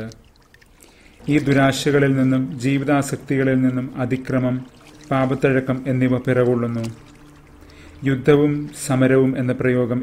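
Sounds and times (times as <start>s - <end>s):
man narrating: 0.0s - 0.2s, 1.2s - 7.1s, 8.0s - 10.0s.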